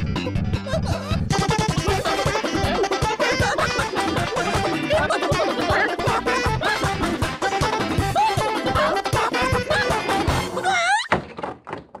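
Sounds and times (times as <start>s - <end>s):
upbeat music: 1.2s - 10.6s.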